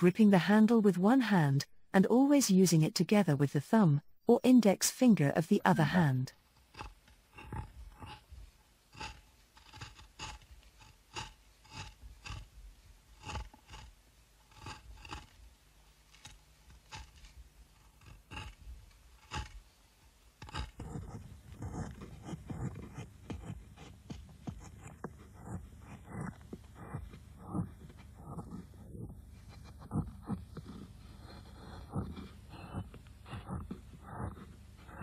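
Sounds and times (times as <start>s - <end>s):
gouge scraping wood: 6.5s - 35.0s.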